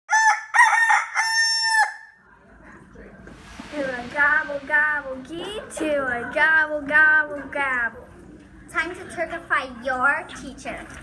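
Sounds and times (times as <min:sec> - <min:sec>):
rooster crowing: 0:00.1 - 0:02.2.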